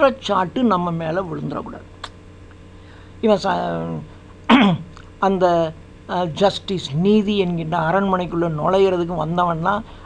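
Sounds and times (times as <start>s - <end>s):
man clearing throat: 4.5s - 5.0s.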